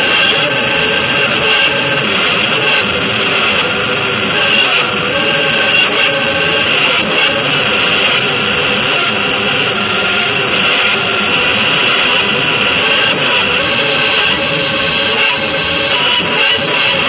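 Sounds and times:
distorted electric guitar noise: 0.0s - 17.0s.

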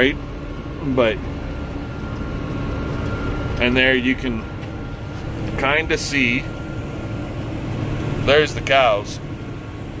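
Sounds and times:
faint high whine: 0.0s - 9.4s
tractor engine running: 0.0s - 10.0s.

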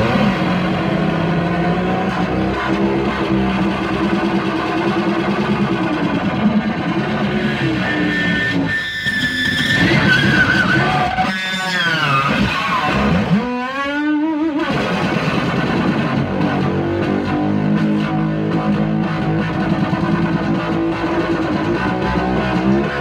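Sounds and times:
solo electric guitar: 10.7s - 23.0s.

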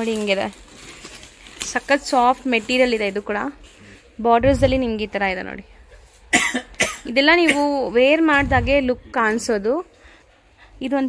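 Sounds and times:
person speaking: 4.2s - 5.6s, 8.1s - 9.6s
person coughing: 6.3s - 7.8s.

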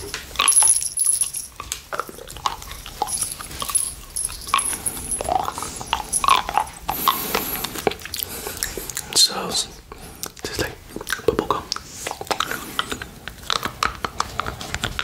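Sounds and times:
licking and sucking candy: 1.5s - 15.0s.

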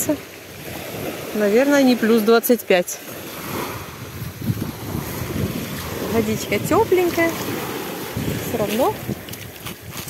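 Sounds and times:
waves washing onto pebbles: 0.0s - 10.0s
wind buffeting microphone: 3.1s - 10.0s.

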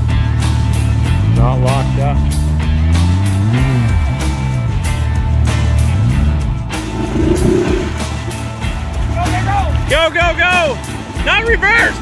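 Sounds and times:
vehicle engine revving: 2.3s - 8.6s.

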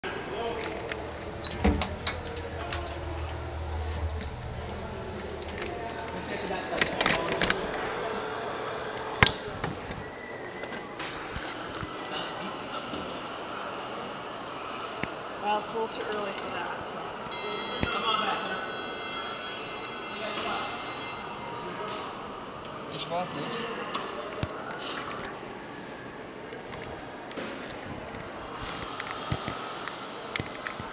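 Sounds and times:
steady background hum: 0.0s - 24.3s.

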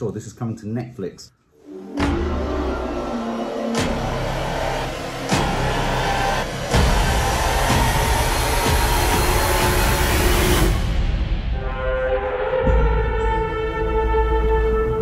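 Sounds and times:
dark trailer music: 1.6s - 15.0s
rushing noise: 1.7s - 11.4s.

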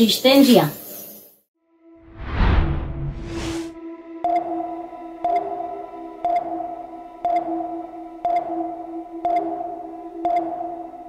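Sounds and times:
steady low drone: 2.0s - 8.2s.

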